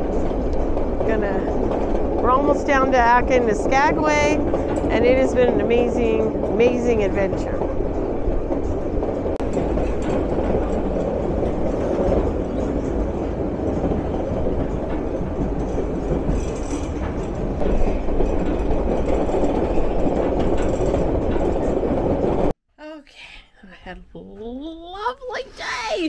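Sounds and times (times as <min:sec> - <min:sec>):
clickety-clack of train: 0:00.0 - 0:22.5
train wheels rumbling on rail: 0:00.0 - 0:22.6
wind: 0:00.0 - 0:22.6.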